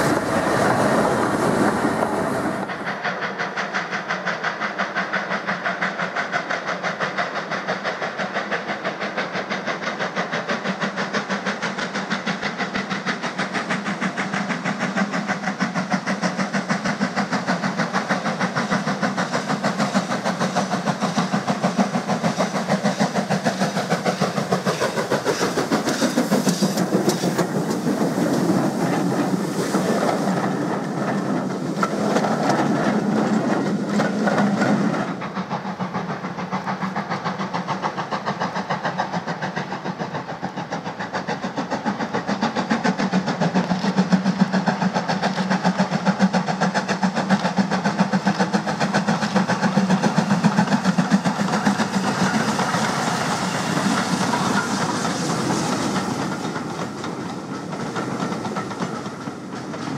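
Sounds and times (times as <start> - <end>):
steam locomotive exhaust beats: 0.0 - 59.9
train wheels clickety-clack: 0.0 - 59.9.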